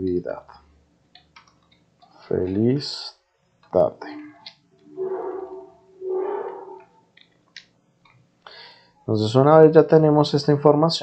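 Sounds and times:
computer keyboard clicks: 1.2s - 1.8s.

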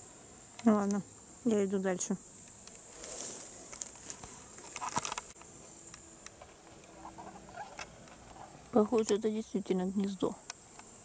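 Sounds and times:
insects chirring: 0.0s - 11.0s
footsteps rustling through grass: 2.8s - 4.8s.

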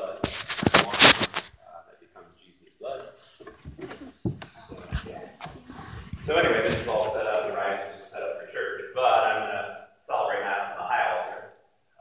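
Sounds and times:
soft knocks: 3.4s - 5.8s.

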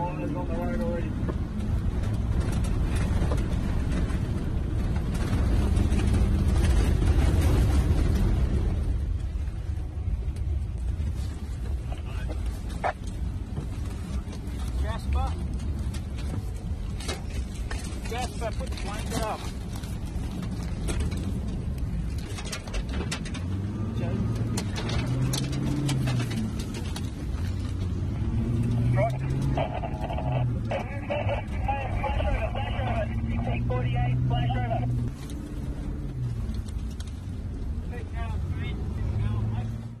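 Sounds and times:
continuous rushing noise: 0.0s - 40.0s
fire truck engine: 0.0s - 40.0s.

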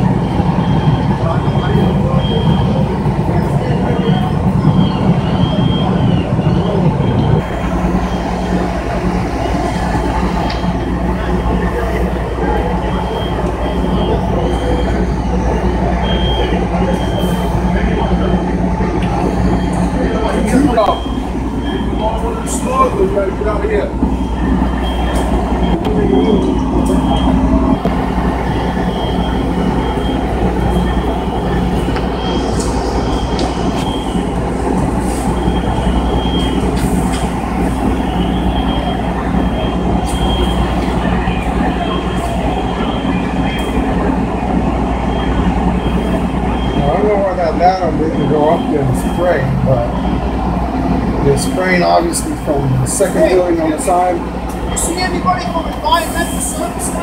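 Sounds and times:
fire engines running: 0.0s - 57.0s.

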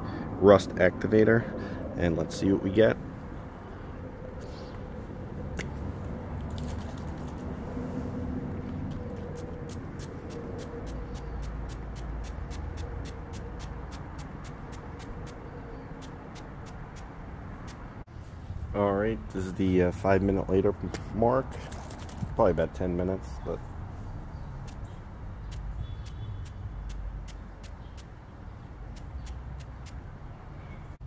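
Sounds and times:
low outdoor rumble: 0.0s - 25.8s
spray bottle spritzing: 9.3s - 15.4s, 25.5s - 28.1s, 28.9s - 30.0s.

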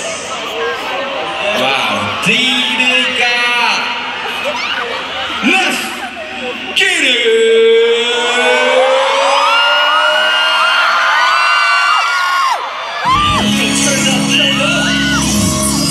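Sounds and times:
arena crowd screaming: 0.0s - 15.9s
electronic music with heavy bass: 13.1s - 15.9s.

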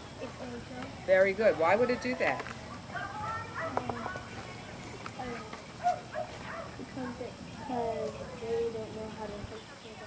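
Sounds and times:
children's voices: 6.4s - 10.0s.

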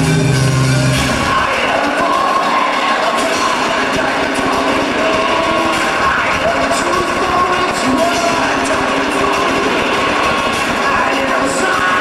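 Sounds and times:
crowd cheering and yelling: 0.0s - 12.0s
loud band music with heavy bass: 0.0s - 12.0s.

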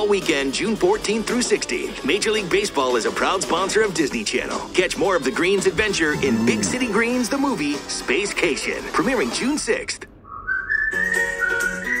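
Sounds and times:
background music: 0.0s - 9.6s
whistled tune: 10.2s - 12.0s.

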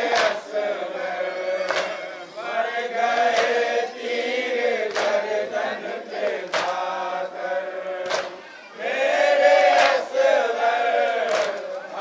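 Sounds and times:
men chanting together: 0.0s - 12.0s
chest-beating slaps: 6.5s - 6.8s.

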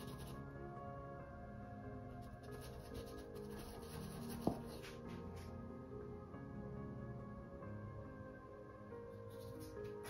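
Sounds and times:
paintbrush scratching on canvas: 0.0s - 0.4s, 2.3s - 4.9s
soft background music: 0.0s - 10.0s.

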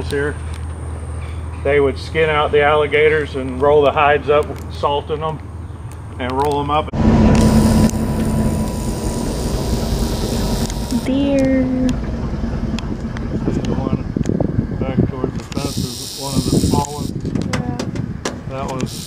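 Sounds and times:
indistinct voices talking: 6.2s - 18.9s
bus engine running: 6.9s - 16.0s.

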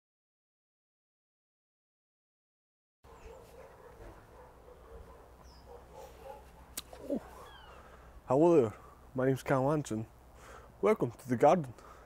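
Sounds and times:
distant bird chirp: 3.1s - 8.1s.

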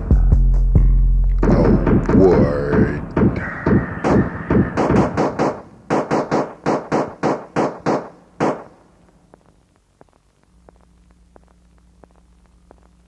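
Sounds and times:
tape hiss: 0.0s - 13.0s
rapid percussive hits: 1.4s - 8.0s.

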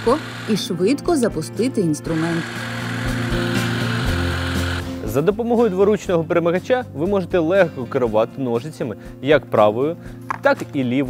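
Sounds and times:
hedge trimmer running: 0.0s - 5.0s.

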